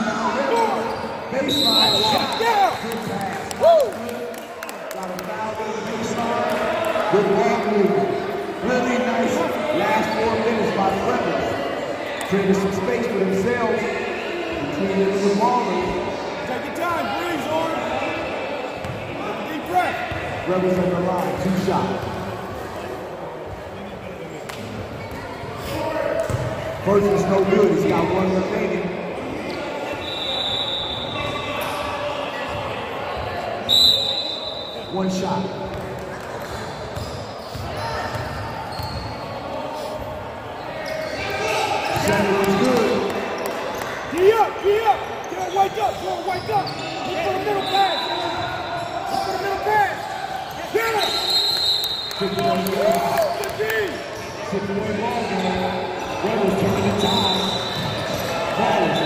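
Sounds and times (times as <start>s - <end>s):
sneakers squeaking: 0.4s - 3.2s, 18.7s - 19.1s, 23.5s - 26.8s, 35.6s - 52.4s, 53.2s - 59.0s.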